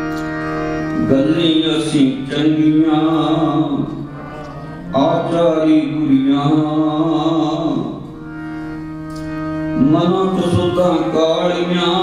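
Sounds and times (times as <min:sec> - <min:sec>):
harmonium: 0:00.0 - 0:12.0
man singing devotional melody: 0:01.0 - 0:04.3, 0:04.9 - 0:08.3, 0:09.7 - 0:12.0.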